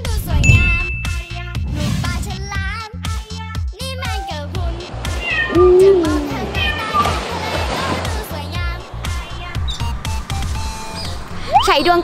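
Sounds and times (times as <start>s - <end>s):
cat meowing: 5.0s - 7.2s.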